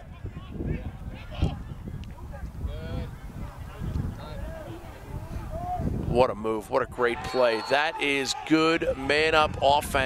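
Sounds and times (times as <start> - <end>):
distant players shouting: 7.0 - 9.8.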